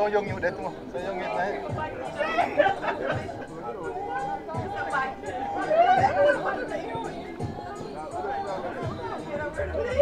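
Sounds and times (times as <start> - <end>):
men talking and calling out: 0.0 - 10.0.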